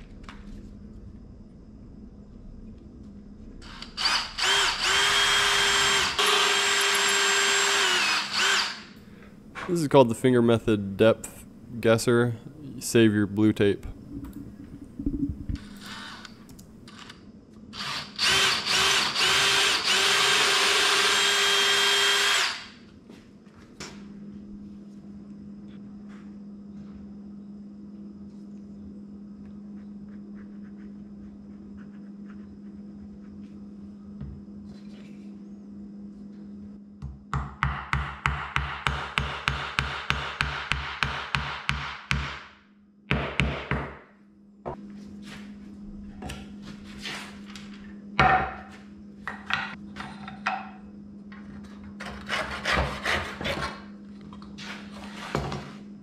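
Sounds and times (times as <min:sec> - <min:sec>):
cordless drill boring wood: 0:03.6 - 0:09.0, 0:15.6 - 0:16.4, 0:17.8 - 0:22.7.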